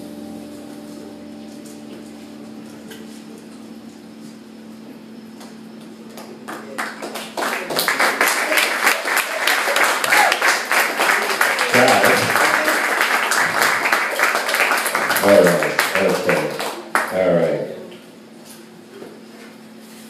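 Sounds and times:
band holding a chord: 0.0 - 5.3
audience applause: 6.1 - 17.7.

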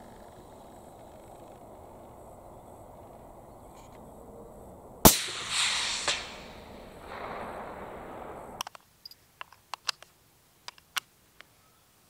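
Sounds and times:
rifle shot with long echo: 5.0 - 8.6
sharp crack: 5.0 - 8.9.

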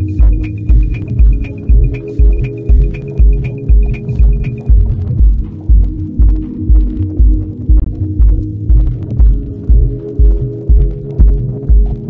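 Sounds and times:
high percussion ticks: 0.0 - 12.0
kick drum: 0.0 - 12.0
low synth chords: 0.0 - 12.0.

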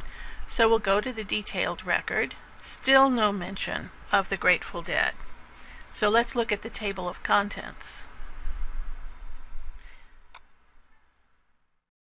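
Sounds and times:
faint room hiss: 0.0 - 11.9.

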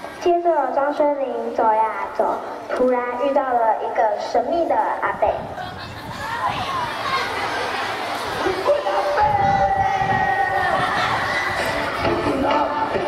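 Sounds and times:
children shouting and cheering: 5.4 - 13.0.

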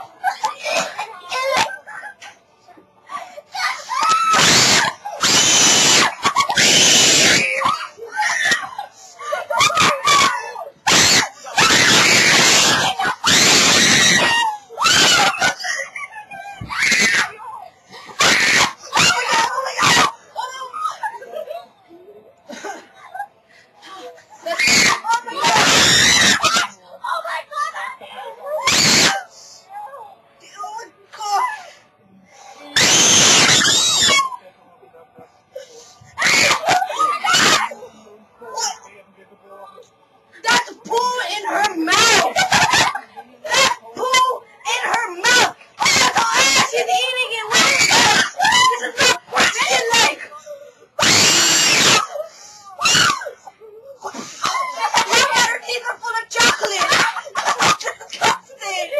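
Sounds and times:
young people screaming: 3.5 - 21.1, 24.4 - 26.8, 28.5 - 29.3, 32.7 - 34.4, 36.2 - 37.8, 40.4 - 50.3, 51.0 - 58.9
person screaming in disgust: 3.9 - 7.6
short shrieks: 32.8 - 34.4.

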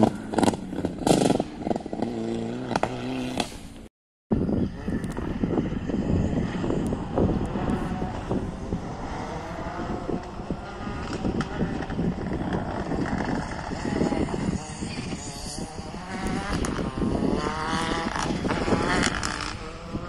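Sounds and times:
distant rally car engine: 0.0 - 20.0.

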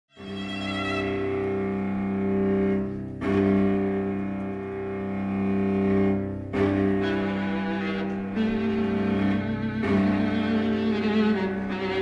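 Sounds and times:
string quartet sustained chords: 0.1 - 12.0.

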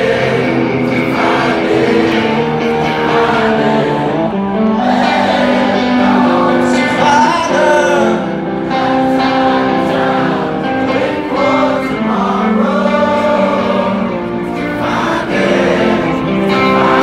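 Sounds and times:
crowd singing held notes: 0.0 - 17.0.

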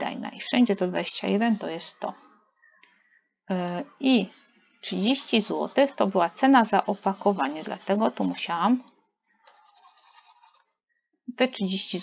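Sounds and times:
stylus scratching on tablet: 4.4 - 10.8.

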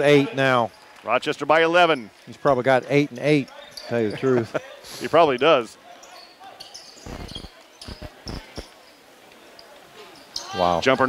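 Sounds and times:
faint gymnasium background noise: 0.0 - 11.0.

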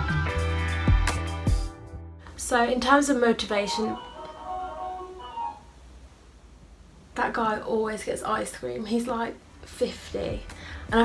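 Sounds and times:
ice cream van chime: 3.6 - 5.7.

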